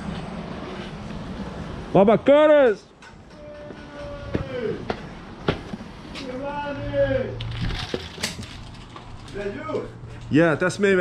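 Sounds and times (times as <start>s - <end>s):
man calling out from a distance: 3.3s - 4.9s.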